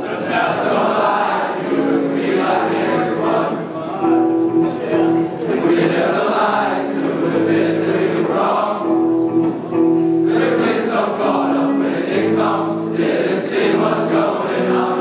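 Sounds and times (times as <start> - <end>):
choir of male voices singing: 0.0 - 3.7, 5.5 - 9.2, 10.2 - 15.0.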